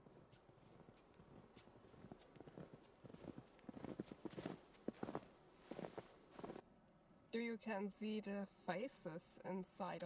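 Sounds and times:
footsteps crunching through snow: 0.0s - 6.6s.

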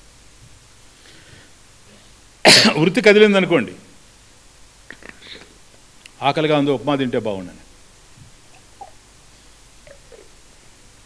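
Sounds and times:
man coughing: 2.4s - 2.8s
man speaking: 6.2s - 7.6s.

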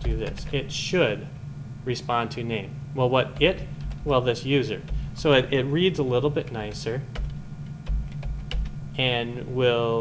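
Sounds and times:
dull low thumps: 0.0s - 0.6s, 3.4s - 4.2s, 7.2s - 8.9s
keyboard keys clicking: 0.0s - 0.6s, 6.4s - 8.8s.

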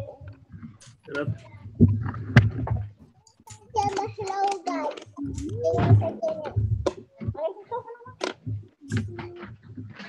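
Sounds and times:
voices over video call: 0.0s - 10.0s.

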